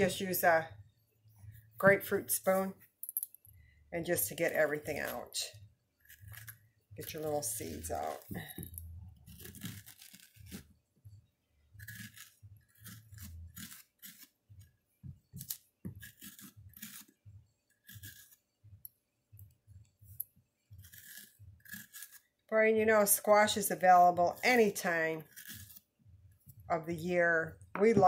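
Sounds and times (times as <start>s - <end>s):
spoon scraping squash: 4.0s - 10.8s, 11.7s - 19.0s, 20.1s - 27.2s.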